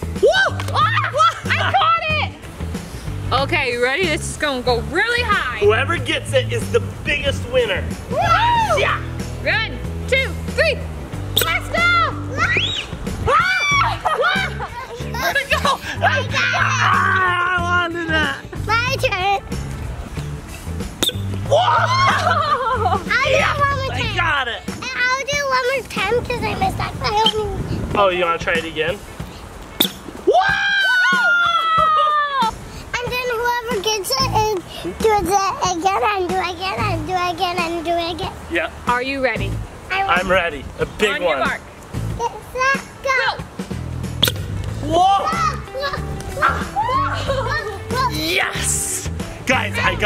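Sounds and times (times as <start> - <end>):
background music with bass line: 0.0 - 50.0
excited voices shouting: 0.2 - 2.3, 8.1 - 9.2, 11.4 - 19.0, 21.4 - 24.2, 30.2 - 32.6, 44.8 - 50.0
sharp pop of air: 11.4 - 11.6, 21.0 - 21.4, 29.8 - 30.2, 44.2 - 44.8.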